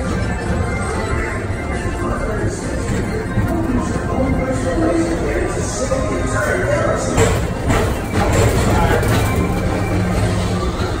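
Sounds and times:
train car humming and rumbling: 0.0s - 11.0s.

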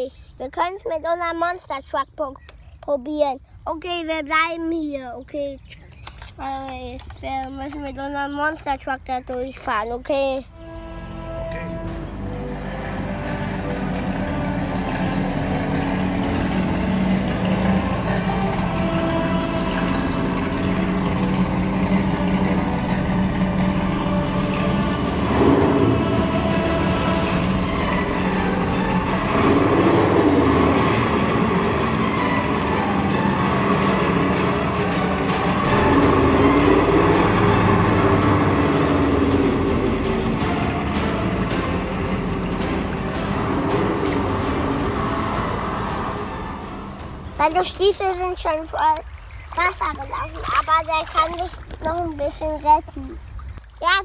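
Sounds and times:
background music: 10.0s - 49.2s
toy truck engine revving: 12.5s - 47.2s.

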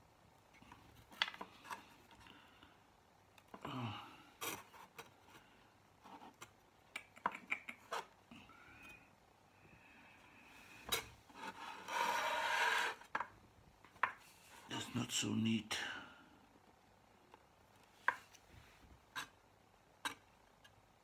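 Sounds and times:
glass rubbing scrape: 10.9s - 13.1s.

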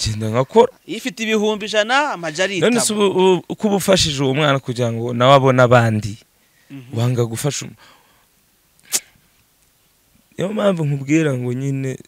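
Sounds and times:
mouth noise into microphone: 5.9s - 7.7s, 8.8s - 9.2s.

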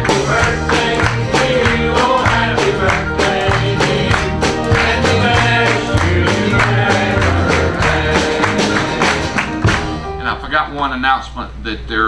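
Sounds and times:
congregation singing: 0.0s - 9.9s
tambourine beat: 0.0s - 10.0s
bass notes: 0.0s - 11.3s
guitar: 0.0s - 11.4s.

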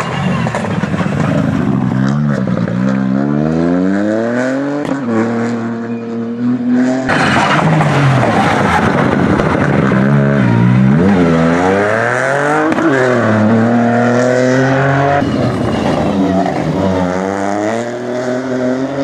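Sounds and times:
car engine revving hard: 6.6s - 15.2s, 16.6s - 19.0s.

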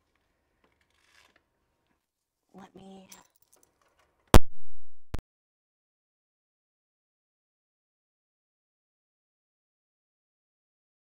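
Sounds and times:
faint rustling handling noise: 0.0s - 4.3s.

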